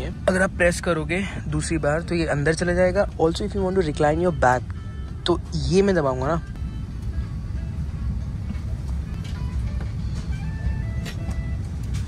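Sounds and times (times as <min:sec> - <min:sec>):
airplane cabin rumble: 0:00.0 - 0:12.0
faint background music: 0:00.0 - 0:12.0.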